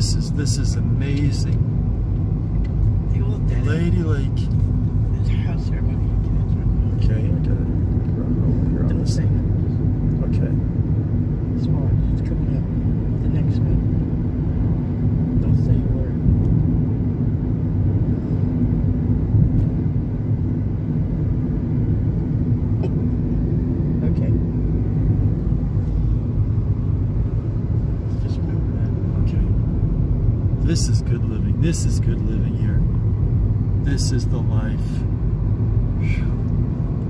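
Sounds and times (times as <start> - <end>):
car engine and tyres rumbling: 0.0 - 37.0
steady hum: 0.0 - 37.0.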